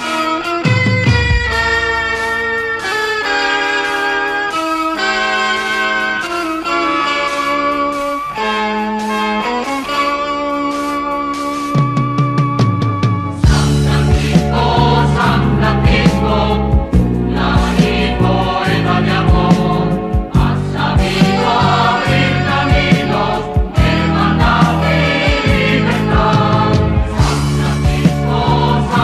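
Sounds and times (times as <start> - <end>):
rock band with drums and bass: 0.0 - 29.0
group singing a rock hymn: 13.3 - 29.0.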